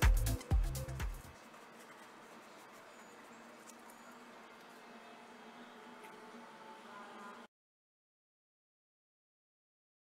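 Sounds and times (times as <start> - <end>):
background music: 0.0 - 1.6.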